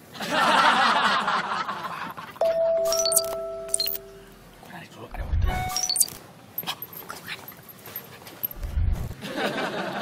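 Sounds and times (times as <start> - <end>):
phone notification chime: 2.4 - 4.3.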